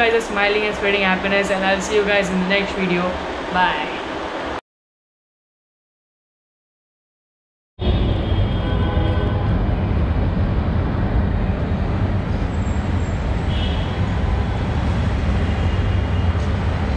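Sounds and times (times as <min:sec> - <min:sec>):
loud low rumble with hiss: 0:07.8 - 0:16.9.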